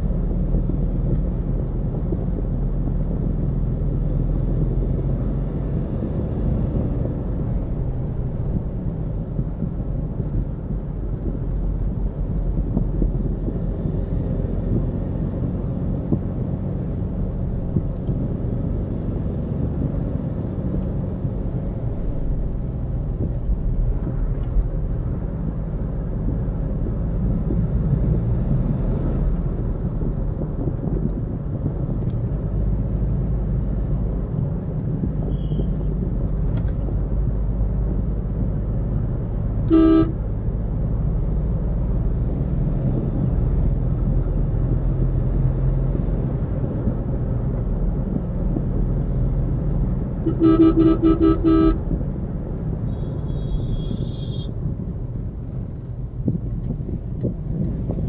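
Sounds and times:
car cabin road and engine rumble: 0:00.0 - 0:58.0
car horn toot: 0:35.3 - 0:35.8, 0:39.7 - 0:40.2, 0:50.2 - 0:51.9, 0:52.9 - 0:54.6.

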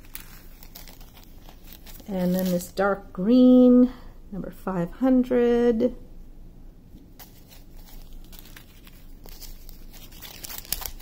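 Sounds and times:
plastic bag crinkling: 0:00.0 - 0:02.8, 0:07.2 - 0:11.0.

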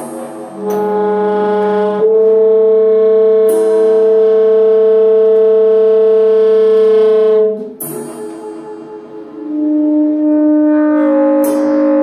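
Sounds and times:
tenor saxophone low note: 0:00.0 - 0:12.0.

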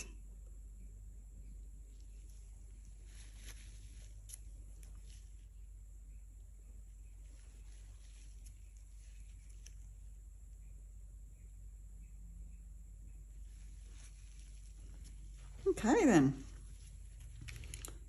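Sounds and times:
low hum: 0:00.0 - 0:18.0
faint soft ticks and scratches: 0:01.4 - 0:10.8, 0:13.1 - 0:18.0.

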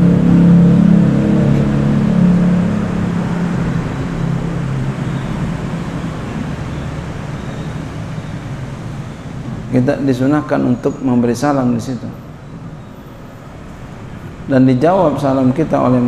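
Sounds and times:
vehicle engine hum: 0:00.0 - 0:16.0.

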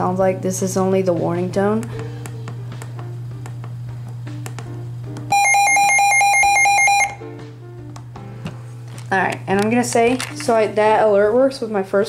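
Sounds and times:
radio alert pulsing beep: 0:05.3 - 0:07.2.

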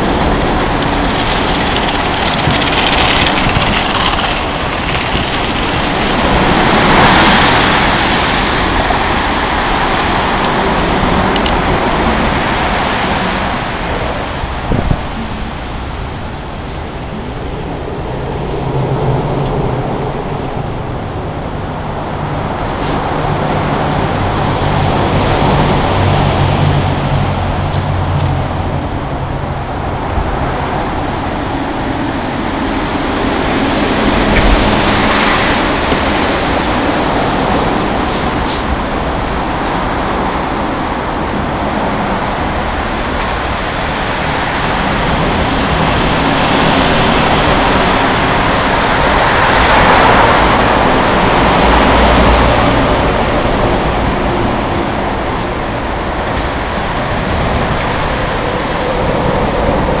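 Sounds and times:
road traffic roar: 0:00.0 - 1:00.0.

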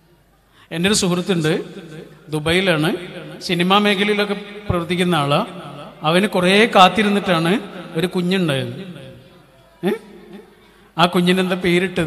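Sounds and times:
man's amplified speech: 0:00.7 - 0:10.3, 0:10.9 - 0:12.0.

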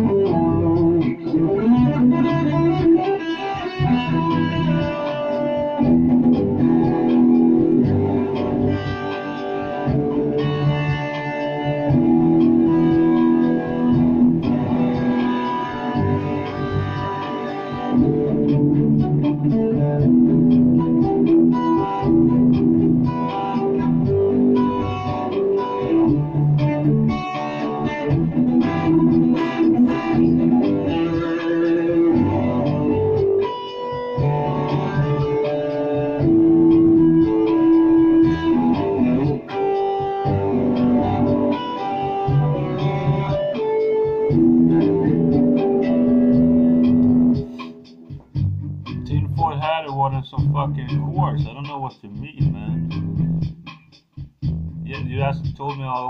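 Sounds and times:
electric guitar lead lines: 0:00.0 - 0:56.0.

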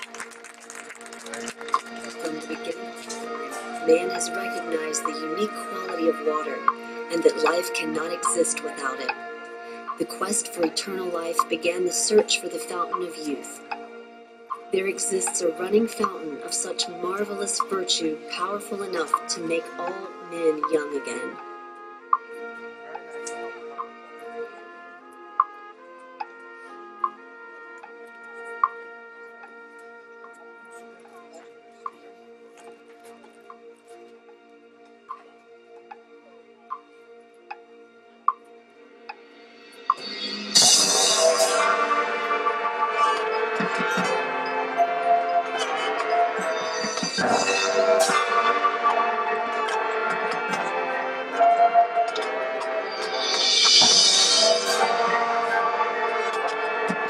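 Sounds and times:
marching band held chords: 0:39.3 - 0:57.0
bright struck notes: 0:39.6 - 0:50.7, 0:52.0 - 0:57.0.

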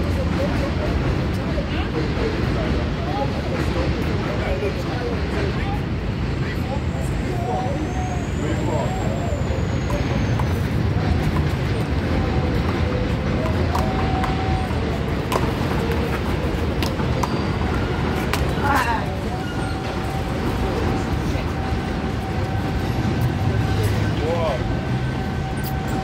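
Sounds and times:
city traffic rumble: 0:00.0 - 0:26.0
indistinct voices: 0:00.0 - 0:26.0.

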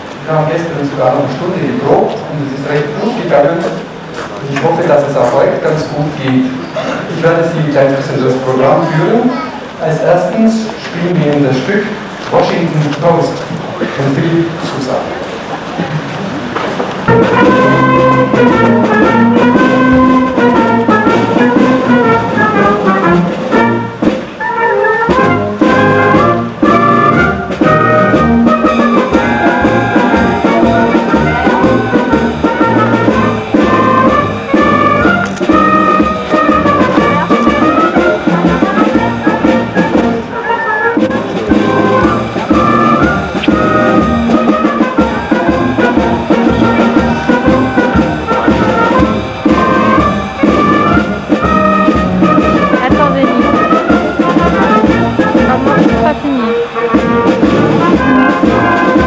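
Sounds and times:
wind band playing: 0:00.0 - 0:59.0.

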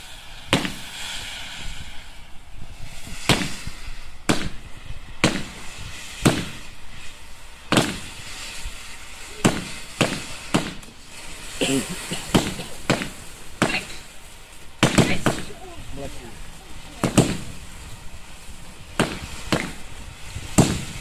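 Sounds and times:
fireworks bangs: 0:00.0 - 0:21.0
steady hiss: 0:00.0 - 0:21.0.

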